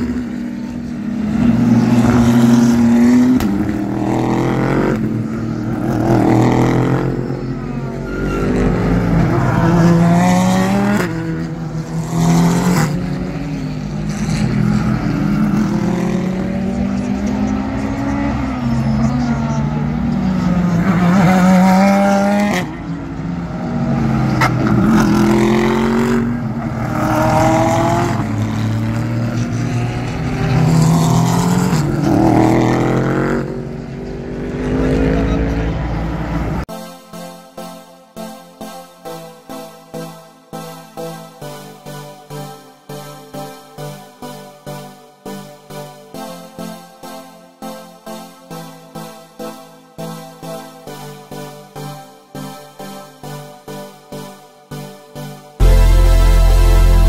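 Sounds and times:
race cars revving past: 0.0 - 36.7.

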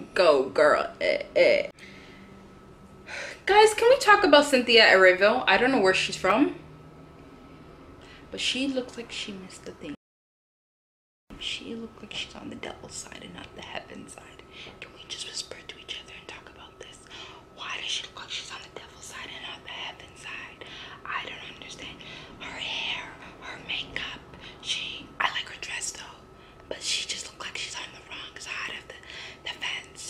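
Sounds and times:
woman whispering: 11.4 - 30.0.

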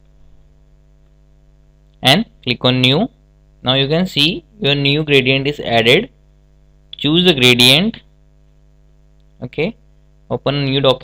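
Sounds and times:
faint electrical mains hum: 0.0 - 11.0
person narrating: 2.0 - 6.2.

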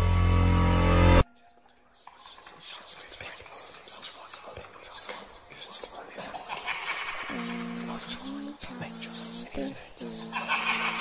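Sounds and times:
person whispering: 1.4 - 11.0.

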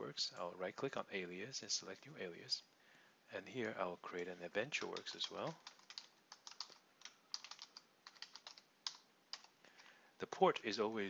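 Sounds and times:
faint keyboard typing: 4.1 - 10.0.

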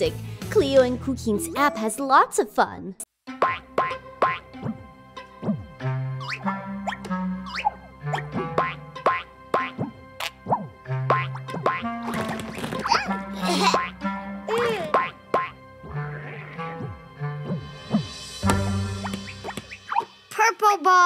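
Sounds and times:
playful cartoon music: 0.0 - 2.4, 3.3 - 21.0.

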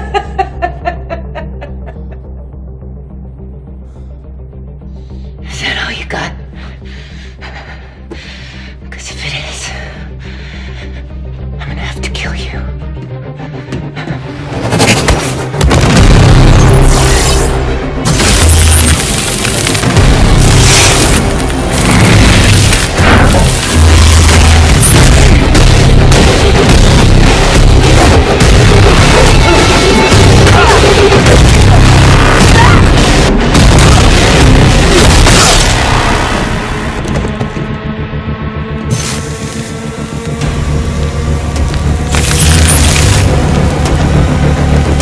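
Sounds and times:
booming low film score: 12.6 - 45.0.

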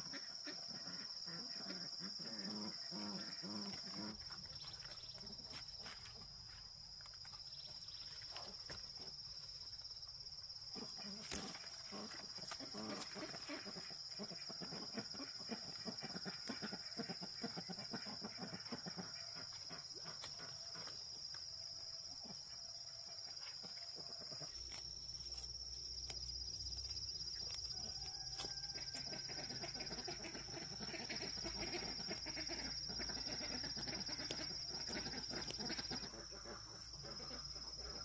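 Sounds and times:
farm animals calling: 0.0 - 6.1, 10.8 - 21.1, 27.3 - 38.0
leaf rustle: 10.8 - 13.8, 24.5 - 30.2.

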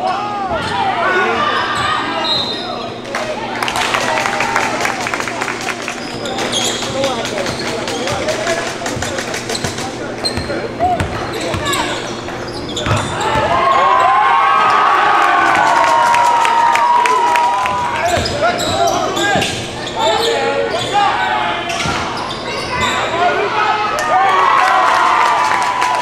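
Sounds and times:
people shouting in echoing hall: 0.0 - 2.8, 13.1 - 26.0
basketball bouncing on hardwood: 12.8 - 13.5.

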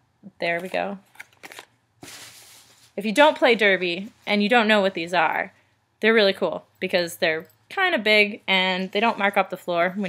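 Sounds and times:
packaging rustling scrape: 1.1 - 3.0.

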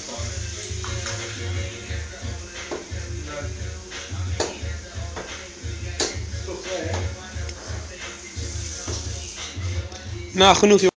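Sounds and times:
music with pulsing bass beat: 0.0 - 10.7.

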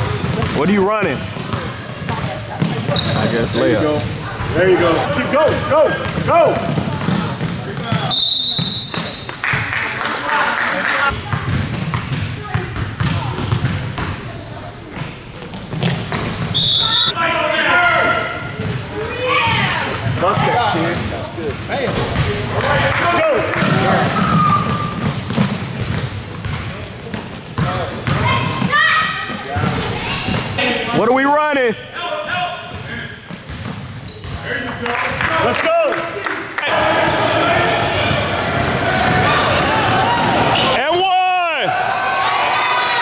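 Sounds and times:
sneaker squeaks: 0.1 - 9.5, 11.1 - 14.0, 15.0 - 17.2, 18.4 - 22.4, 24.0 - 30.6, 31.8 - 34.7, 40.2 - 40.8
basketball bouncing on hardwood: 6.0 - 8.1
voices shouting: 36.6 - 43.0.

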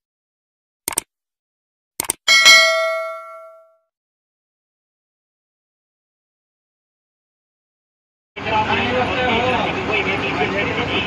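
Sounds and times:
mouse click: 2.0 - 2.2
bell ding: 2.3 - 3.8.

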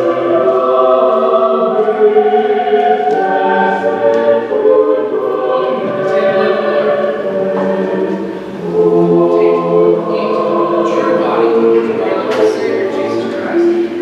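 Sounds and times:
group singing a hymn: 0.0 - 14.0.

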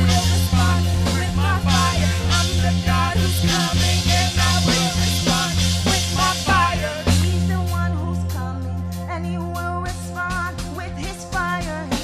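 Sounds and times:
steady beat: 0.0 - 8.0
keyboard chords: 0.0 - 12.0
women singing into microphones: 0.0 - 12.0.

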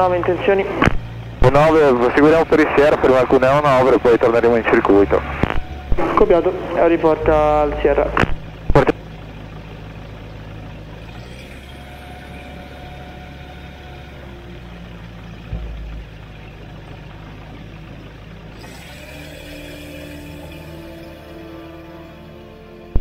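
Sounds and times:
propeller engine running: 0.0 - 23.0.

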